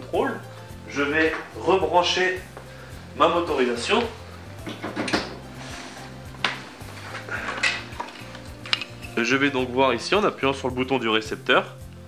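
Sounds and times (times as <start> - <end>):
background music: 0.0 - 12.0
wires rattling: 0.8 - 10.7.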